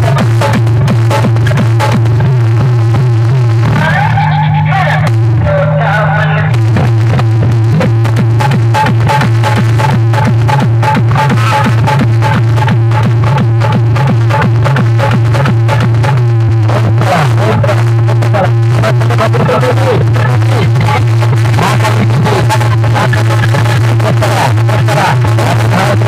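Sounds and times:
heavy low drone: 0.0s - 26.0s
loud electronic dance music: 0.0s - 26.0s.

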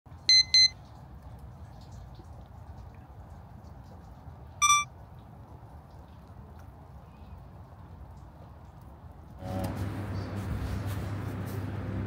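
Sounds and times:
short electronic beeps: 0.3s - 0.8s, 4.6s - 4.9s.

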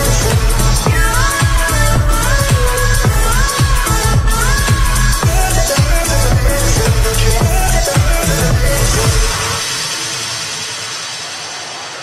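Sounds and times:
crowd noise: 0.0s - 12.0s
electronic dance music: 0.0s - 12.0s.

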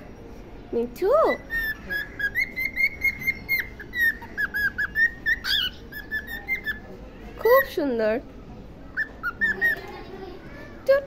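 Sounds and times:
cockatiel whistling: 1.3s - 6.8s, 8.9s - 9.8s.

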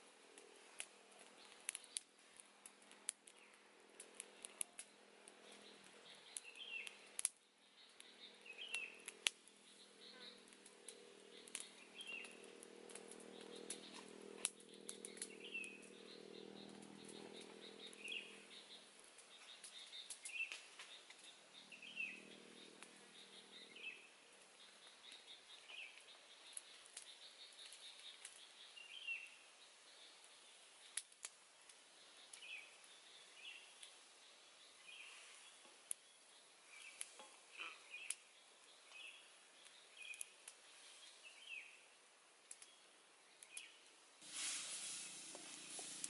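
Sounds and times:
bird chirping: 4.2s - 31.0s, 31.9s - 41.9s, 42.5s - 43.9s.

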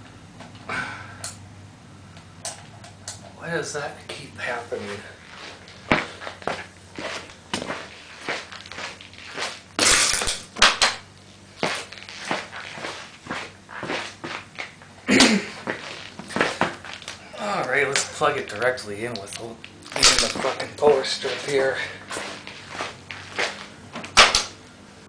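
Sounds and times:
footsteps on concrete floor: 4.5s - 10.0s, 11.4s - 17.2s, 19.2s - 24.4s
rustling: 4.7s - 10.5s, 11.3s - 17.2s, 18.6s - 24.5s.

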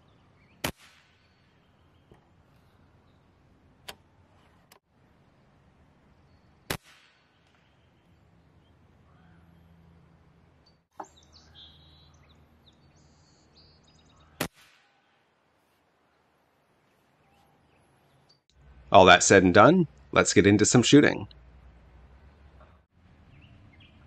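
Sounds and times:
air rifle shots: 0.6s - 1.4s, 6.7s - 7.4s, 14.4s - 15.0s
faint bird calls: 7.6s - 10.1s, 16.8s - 18.3s.

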